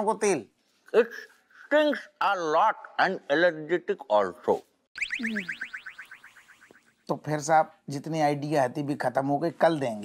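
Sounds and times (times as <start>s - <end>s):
comic chirps sliding down in pitch: 5.0s - 7.0s.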